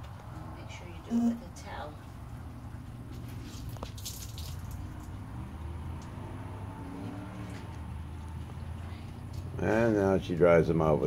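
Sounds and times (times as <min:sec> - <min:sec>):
water dripping onto shower pan: 0:03.7 - 0:05.1.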